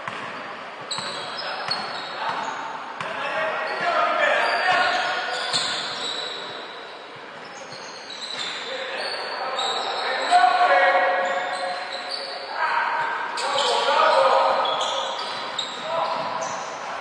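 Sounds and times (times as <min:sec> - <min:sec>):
sneakers squeaking on court: 0:00.0 - 0:17.0.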